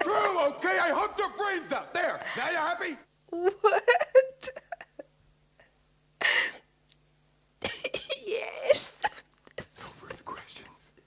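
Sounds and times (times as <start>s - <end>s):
person coughing: 7.6s - 10.7s.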